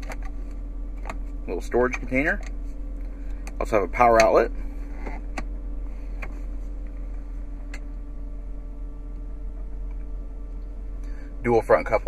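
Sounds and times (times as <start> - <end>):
low car cabin hum: 0.0 - 12.0.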